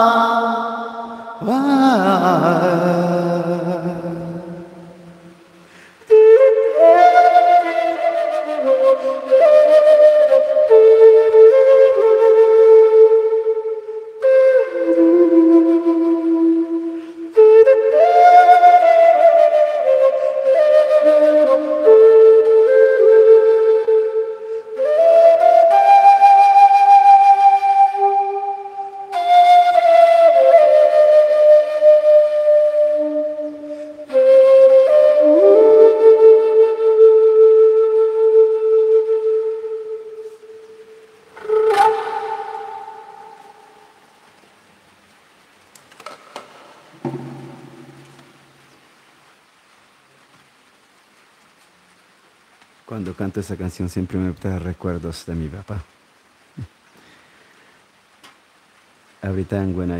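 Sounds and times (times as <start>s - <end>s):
flute playing slow melody: 0.0s - 44.4s, 47.0s - 49.1s
player breathing: 5.6s - 6.0s, 56.9s - 57.9s.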